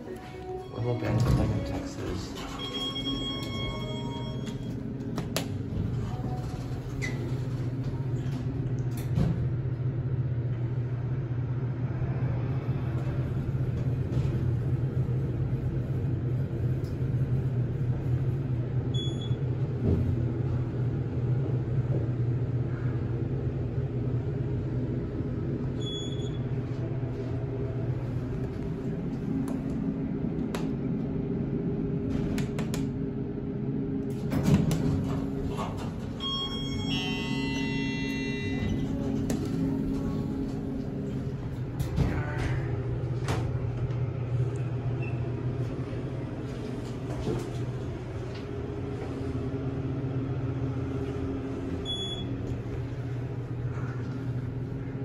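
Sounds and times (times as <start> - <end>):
elevator pump motor humming: 0.0 - 55.0
high steady tone: 36.2 - 39.0.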